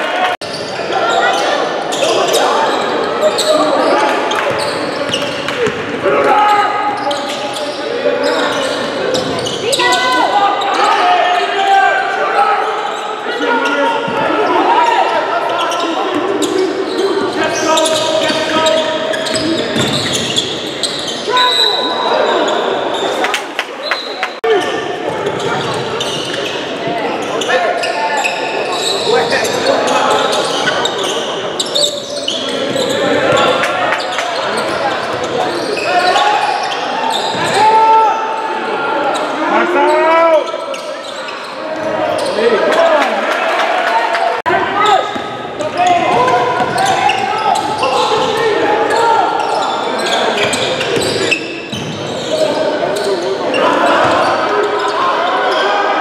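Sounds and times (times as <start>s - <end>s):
crowd talking and calling out: 0.0s - 56.0s.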